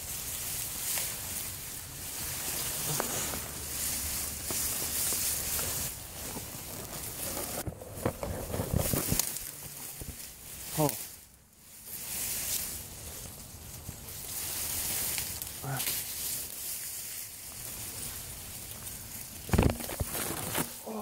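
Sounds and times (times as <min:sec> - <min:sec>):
grass and reeds rustling: 0:00.0 - 0:21.0.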